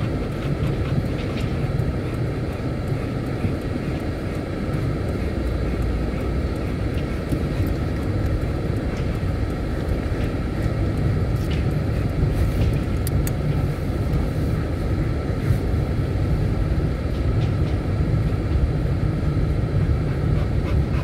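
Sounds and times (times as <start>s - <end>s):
engine rumble: 0.0s - 21.0s.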